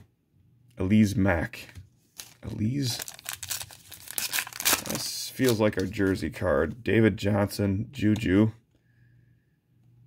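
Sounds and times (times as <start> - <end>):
foil wrapper tearing and crinkling: 2.2 - 6.0.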